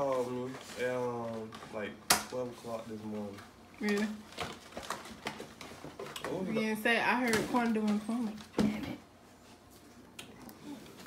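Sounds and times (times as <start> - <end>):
paper and cardboard rustling: 0.0 - 9.8.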